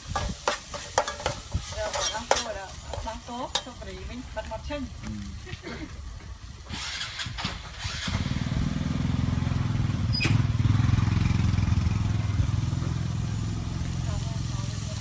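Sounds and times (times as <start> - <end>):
rustling or scraping: 0.0 - 3.8
motorcycle engine running: 7.9 - 15.0.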